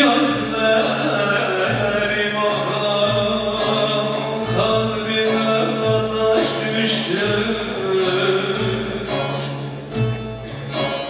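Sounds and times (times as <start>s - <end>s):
folk ensemble plucked strings: 0.0s - 11.0s.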